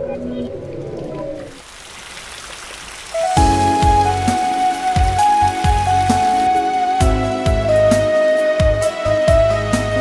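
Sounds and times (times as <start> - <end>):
rain patter: 0.4 - 7.8.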